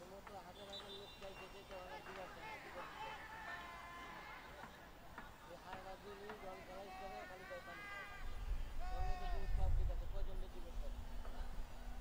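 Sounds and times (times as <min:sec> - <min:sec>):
players shouting: 0:00.6 - 0:04.8, 0:06.0 - 0:09.5.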